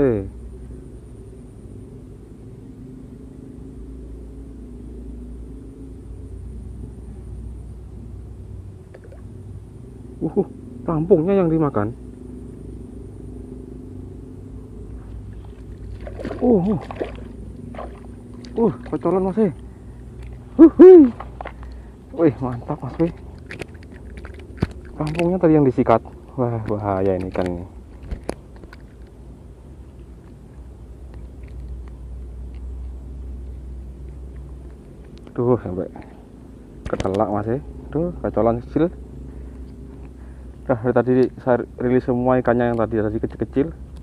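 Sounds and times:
faint hum: 0.0 - 44.0
person exclaiming: 20.6 - 21.2
fish handling clicks and taps: 22.5 - 25.4, 26.1 - 29.2, 36.8 - 37.2.

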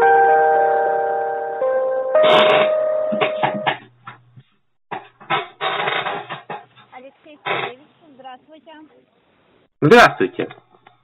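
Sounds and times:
electronic hold music over phone: 0.0 - 3.7.

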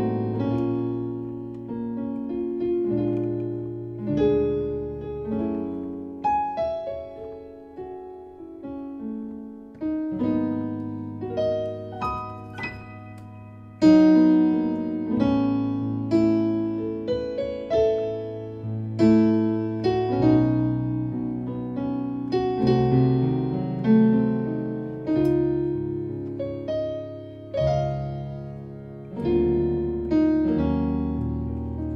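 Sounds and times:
piano chords ringing: 0.0 - 31.9.

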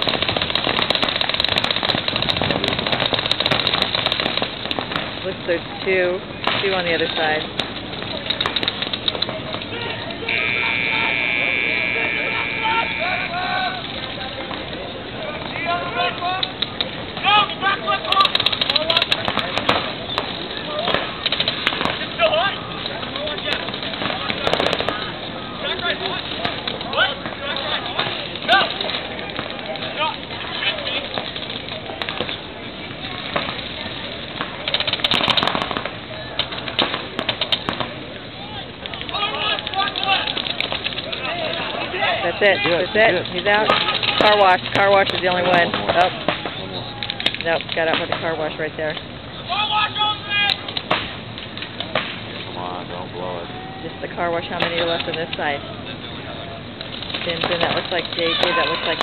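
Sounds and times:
paintball markers popping: 0.0 - 5.1, 38.8 - 41.7, 56.8 - 59.0
people shouting and calling out: 9.2 - 19.6, 38.0 - 48.6, 49.3 - 50.8, 53.1 - 59.0.

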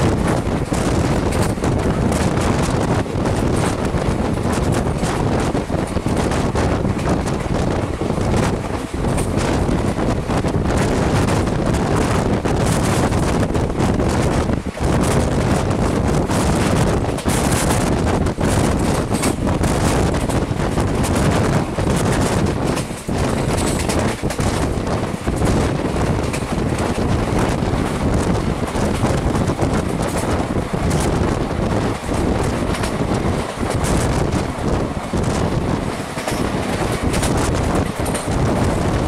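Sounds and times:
train coaches running on track: 0.0 - 39.0
wind rushing over microphone: 0.0 - 39.0.

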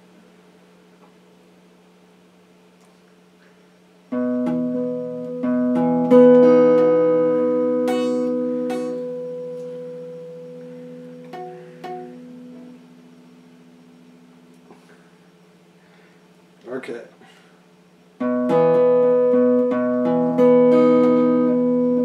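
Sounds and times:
light guitar plucks: 4.1 - 14.8, 18.2 - 22.0
electric guitar chord picked: 4.1 - 15.0, 18.2 - 22.0.

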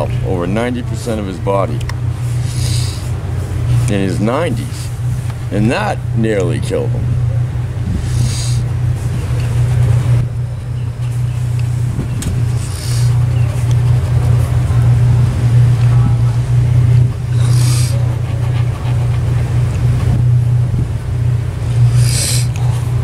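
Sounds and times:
low mechanical hum: 0.0 - 23.0
hissing bursts: 2.2 - 3.2, 7.9 - 8.7, 12.4 - 13.3, 17.2 - 18.1, 21.6 - 22.6.

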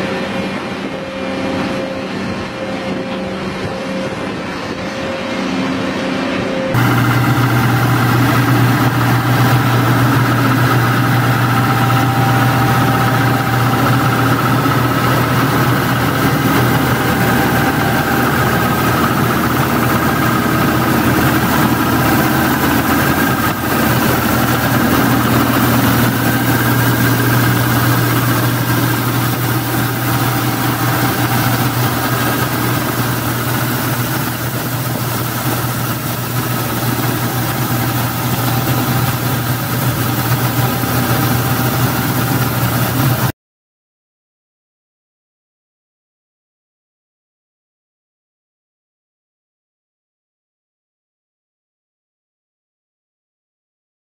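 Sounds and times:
road-cleaning truck engine drone: 0.0 - 43.3
thin steady whine: 0.0 - 43.3.

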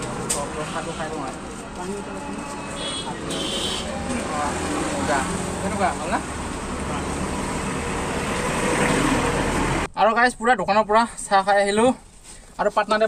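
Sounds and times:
vehicles passing: 0.0 - 10.0.

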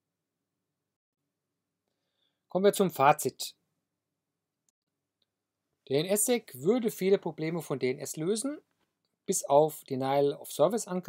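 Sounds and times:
person speaking: 2.5 - 3.6, 5.8 - 11.0.

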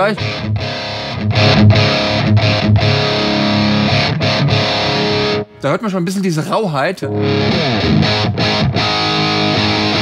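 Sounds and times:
distorted electric guitar riff: 0.0 - 5.6, 7.1 - 10.0.

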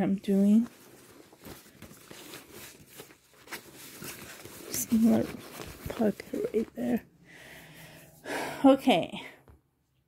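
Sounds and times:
fabric bag rustling: 0.0 - 7.0.

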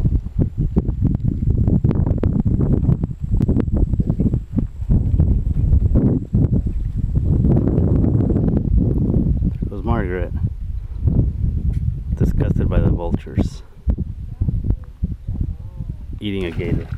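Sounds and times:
wind buffeting microphone: 0.0 - 16.9.

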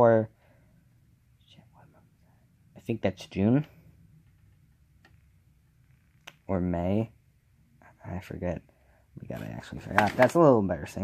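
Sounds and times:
low hum: 0.4 - 9.8.

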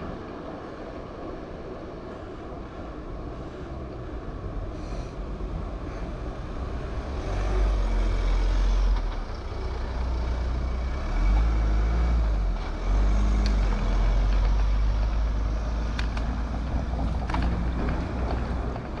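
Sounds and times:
tyre and road noise: 0.0 - 19.0.

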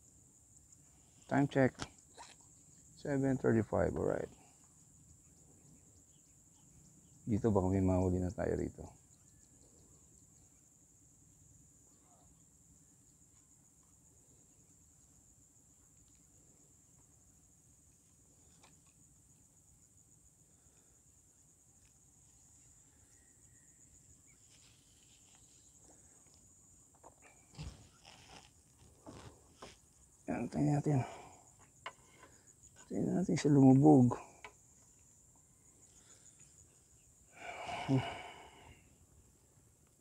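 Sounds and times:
high-pitched insect trill: 0.0 - 40.0.

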